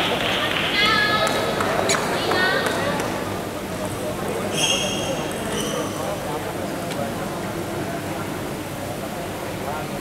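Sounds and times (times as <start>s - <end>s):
murmur of distant voices: 0.0s - 10.0s
brief high squeak: 4.5s - 6.0s.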